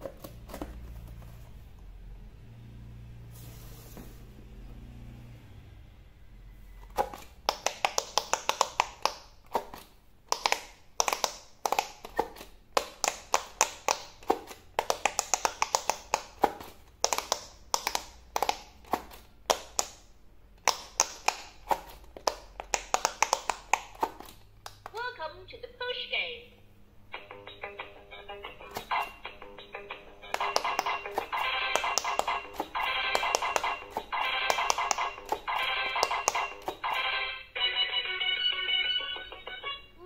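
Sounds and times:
pop-it game popping: 0:06.9 - 0:20.0, 0:20.6 - 0:25.0, 0:28.7 - 0:29.3, 0:30.2 - 0:37.3.

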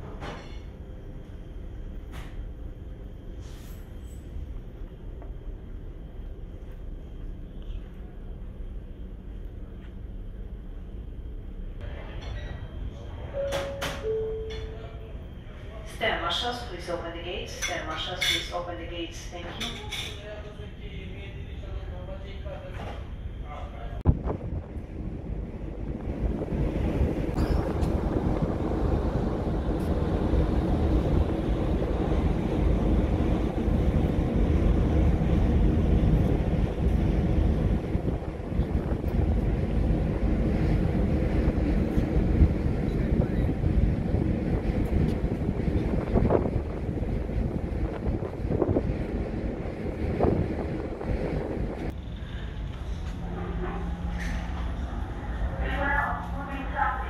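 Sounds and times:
low rumble of ship: 0:00.0 - 0:57.0
wind buffeting microphone: 0:24.0 - 0:52.0.

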